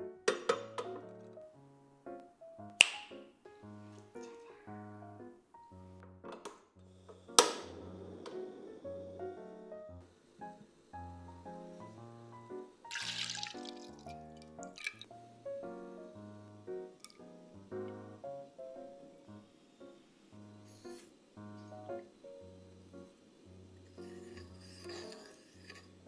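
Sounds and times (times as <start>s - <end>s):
background music: 0.0s - 26.0s
finger snap: 2.2s - 3.3s
milk pouring into a saucepan: 12.8s - 15.1s
drips and splashes: 12.9s - 15.1s.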